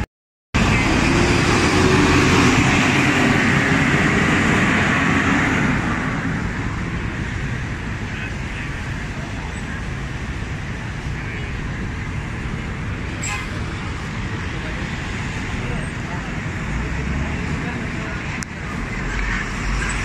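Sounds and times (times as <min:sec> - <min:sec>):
traffic on busy road: 0:00.0 - 0:20.0.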